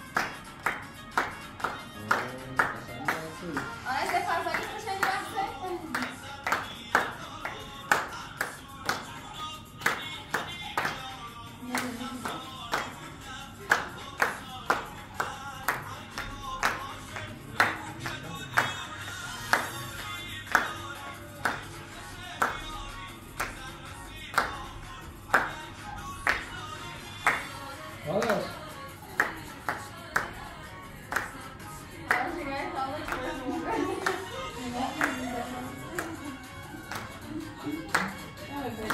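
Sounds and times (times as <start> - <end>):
hands clapping in rhythm: 0.0 - 38.9
music playing: 0.0 - 38.9.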